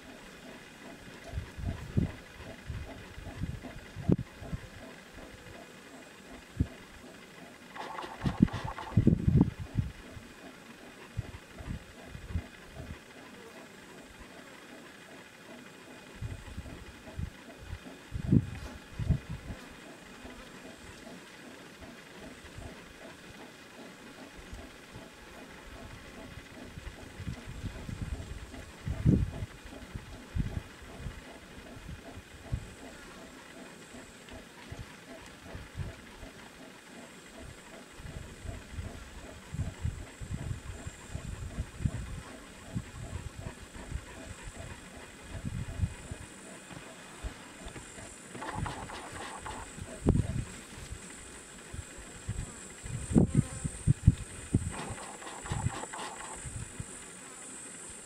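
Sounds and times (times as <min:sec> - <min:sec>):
wind buffeting microphone: 0:01.3 - 0:04.7, 0:08.0 - 0:10.1, 0:16.2 - 0:19.6, 0:25.8 - 0:32.7, 0:37.5 - 0:46.2, 0:48.4 - 0:51.0, 0:51.7 - 0:57.0
high-pitched insect drone: 0:54.7 - 0:58.0.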